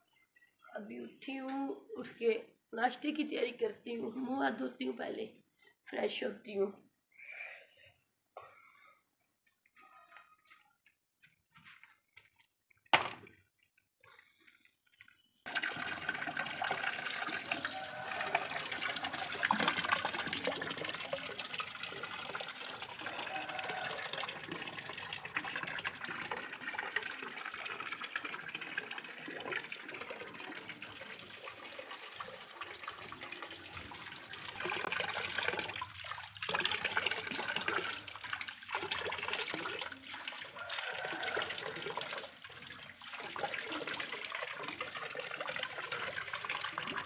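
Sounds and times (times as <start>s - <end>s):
tap water pouring into tub: 15.5s - 47.0s.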